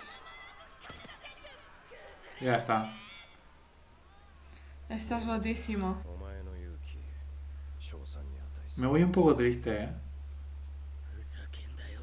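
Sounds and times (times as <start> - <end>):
steady low hum: 0.0 - 12.0
faint breathy whisper: 11.0 - 12.0.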